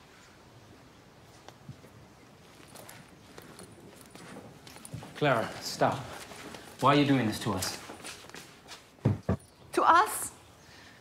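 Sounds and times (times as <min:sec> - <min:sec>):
footsteps on tiled floor: 0:01.7 - 0:09.4.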